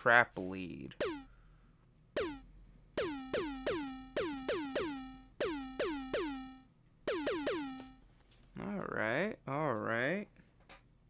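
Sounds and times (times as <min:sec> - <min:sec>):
chiptune synth notes: 0:01.0 - 0:01.3, 0:02.2 - 0:08.0.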